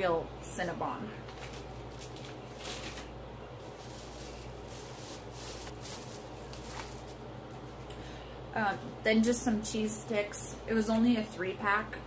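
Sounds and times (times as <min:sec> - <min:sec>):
steady low hum: 0:00.0 - 0:12.0
plastic bags crinkling: 0:01.2 - 0:07.9.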